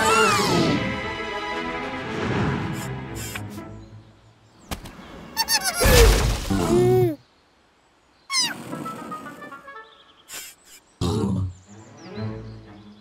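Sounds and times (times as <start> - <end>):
wordless cartoon character vocals: 6.5 - 7.2.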